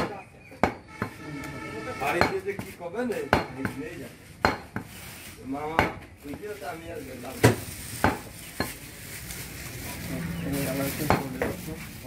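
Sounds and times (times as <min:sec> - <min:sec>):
cleaver chopping meat on wood: 0:00.0 - 0:01.2, 0:02.1 - 0:03.8, 0:04.4 - 0:04.9, 0:05.7 - 0:06.4, 0:07.4 - 0:08.7.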